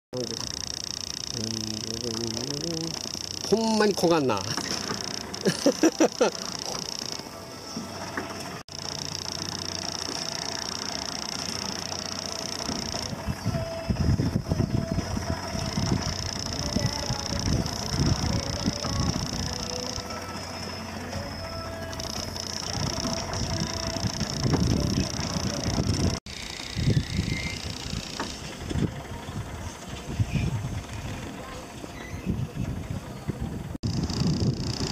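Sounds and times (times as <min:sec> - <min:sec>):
ride car rumbling and rattling: 0:00.2 - 0:34.9.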